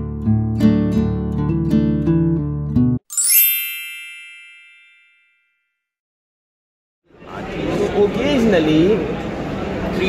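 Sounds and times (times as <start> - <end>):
bright chime: 3.1 - 5.7.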